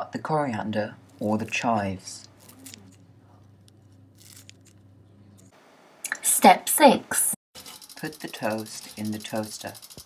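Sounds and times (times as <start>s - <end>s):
low steady hum: 0.0s - 6.2s.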